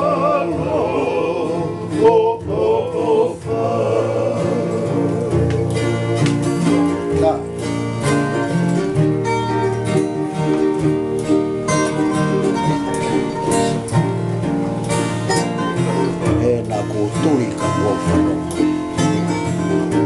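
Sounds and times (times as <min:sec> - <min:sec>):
acoustic guitars strumming and picking: 0:00.0 - 0:20.0.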